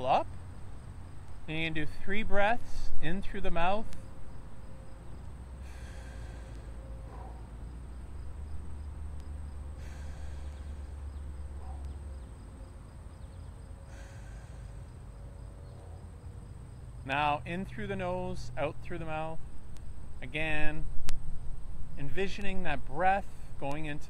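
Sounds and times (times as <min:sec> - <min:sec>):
low steady rumble: 0:00.0 - 0:24.0
man breathing deeply through mouth: 0:05.5 - 0:07.8, 0:09.6 - 0:11.8, 0:13.6 - 0:15.3.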